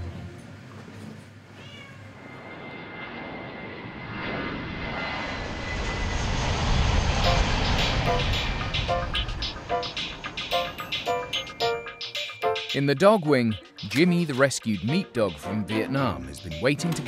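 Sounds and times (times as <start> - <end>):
jet airliner engine whine: 0.0 - 12.6
cat meowing: 1.5 - 2.2.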